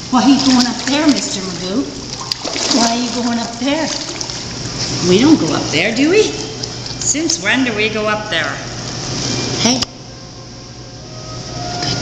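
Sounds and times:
water sloshing in pool: 0:00.0 - 0:07.6
steady low hum: 0:00.0 - 0:12.0.

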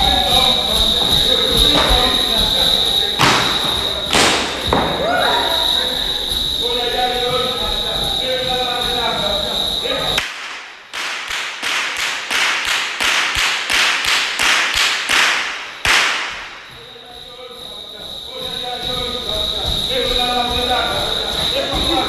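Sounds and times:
whip cracking with echo: 0:03.2 - 0:05.0, 0:10.2 - 0:16.7.

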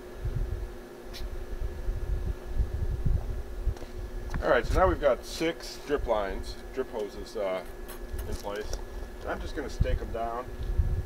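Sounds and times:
faint steady hum: 0:00.0 - 0:11.0
wind buffeting microphone: 0:00.2 - 0:00.7, 0:01.5 - 0:05.1, 0:08.1 - 0:11.0.

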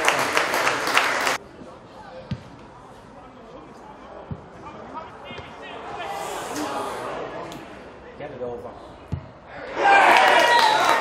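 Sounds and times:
players shouting: 0:04.6 - 0:07.5, 0:09.5 - 0:11.0.

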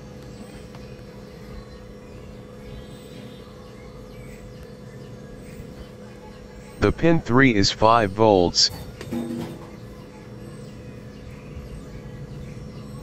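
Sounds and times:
faint constant hum: 0:00.0 - 0:13.0.

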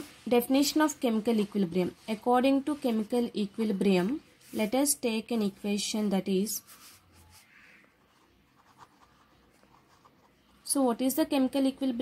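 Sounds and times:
pen scratching on paper: 0:06.6 - 0:10.6.

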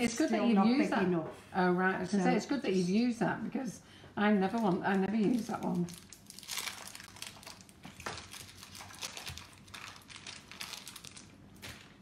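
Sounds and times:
plastic wrapping crinkling: 0:04.4 - 0:12.0.

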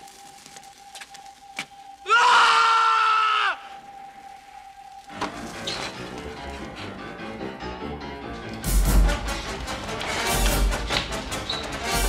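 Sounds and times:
man screaming: 0:02.0 - 0:03.7.

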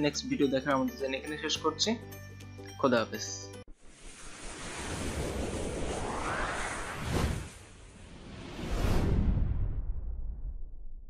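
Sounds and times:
whoosh sweeping upward: 0:03.9 - 0:10.1.

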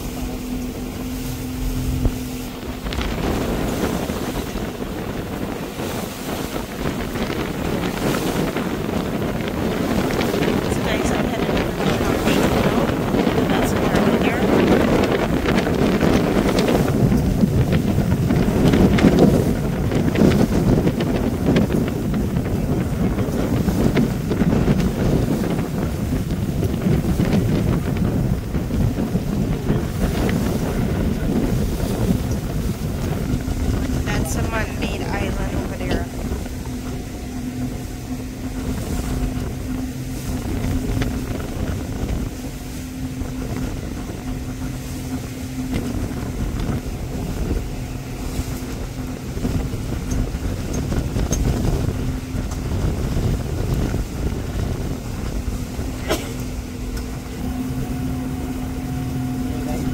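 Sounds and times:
choppy water: 0:00.0 - 0:59.9
motorboat engine running: 0:00.0 - 0:59.9
wind buffeting microphone: 0:00.0 - 0:59.9.

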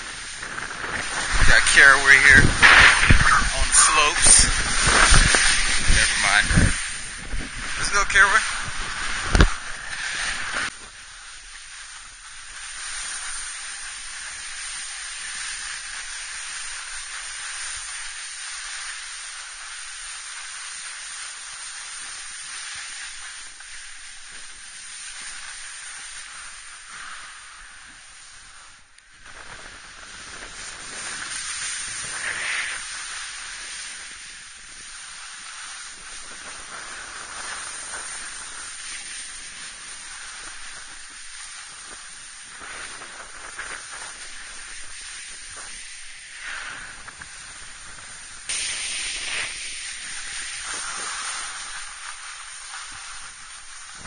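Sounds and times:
snowboard scraping over snow: 0:00.0 - 0:54.0.

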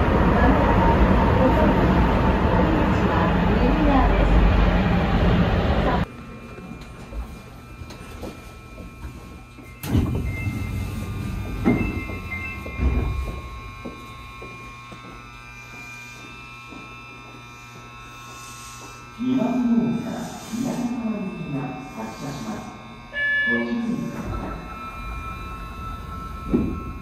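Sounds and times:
subway car running noise: 0:00.0 - 0:17.4, 0:19.6 - 0:27.0
standing train hum: 0:00.0 - 0:27.0.

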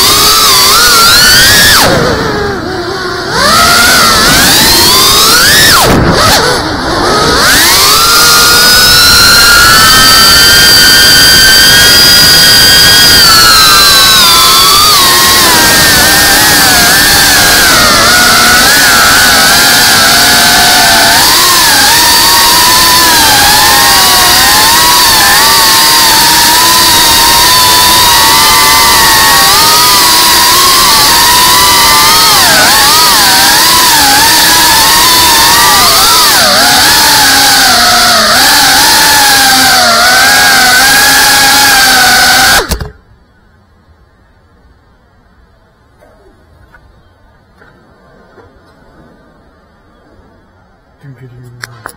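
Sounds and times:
drone motors whining: 0:00.0 - 0:43.2.

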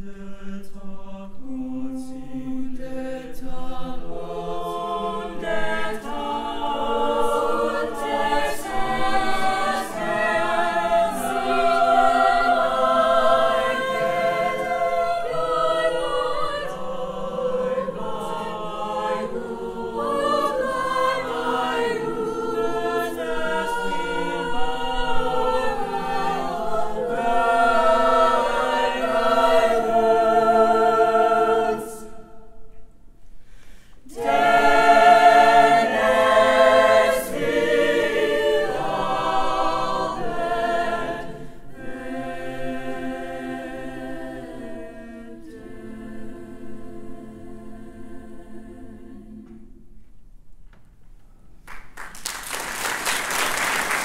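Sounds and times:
mixed choir singing: 0:00.0 - 0:32.8, 0:34.0 - 0:49.9.

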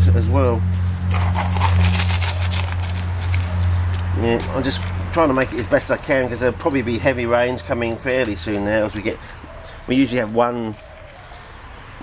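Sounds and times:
charcoal crunching and clicking: 0:01.1 - 0:11.3.

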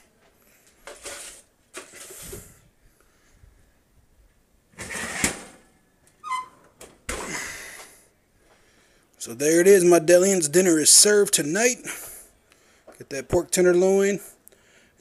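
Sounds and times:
metal sheet pan scraping and rustling: 0:00.8 - 0:02.6, 0:04.8 - 0:05.6.

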